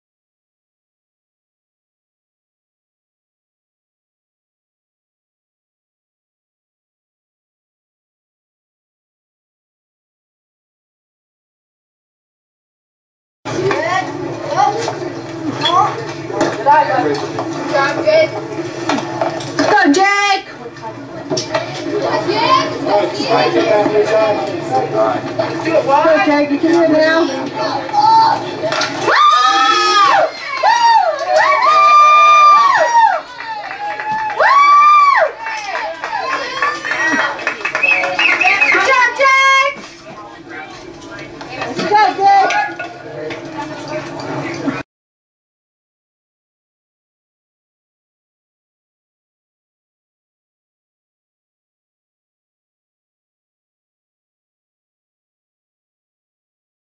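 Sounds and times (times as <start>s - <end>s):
people talking: 13.5s - 31.7s, 35.3s - 44.8s
spectators shouting: 27.8s - 39.8s.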